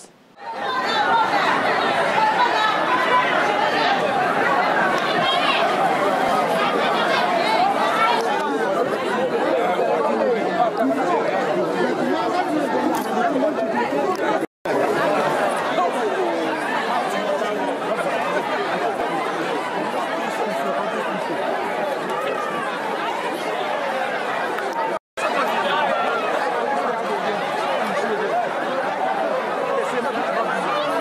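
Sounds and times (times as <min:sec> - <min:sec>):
crowd chatter: 0:00.0 - 0:31.0.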